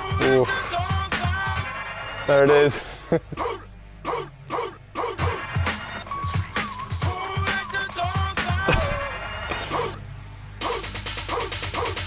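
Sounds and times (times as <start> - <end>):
dance track from vinyl record: 0.0 - 2.8, 5.0 - 10.0, 10.6 - 12.0
steady bass: 3.9 - 12.0.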